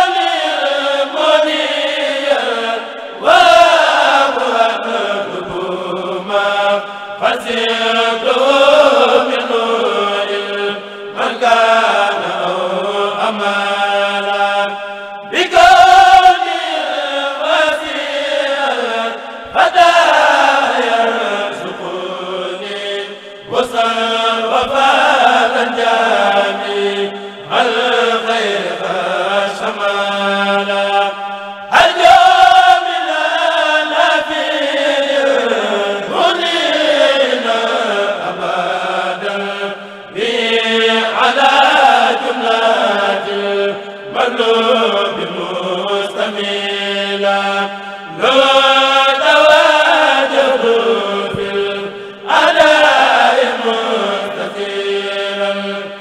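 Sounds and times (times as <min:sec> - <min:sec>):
men chanting unaccompanied: 0:00.0 - 0:56.0.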